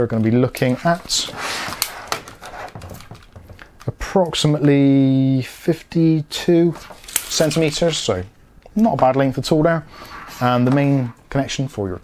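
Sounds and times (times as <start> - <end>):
cable rustling on a desk: 0.5 - 4.0, 6.7 - 8.2.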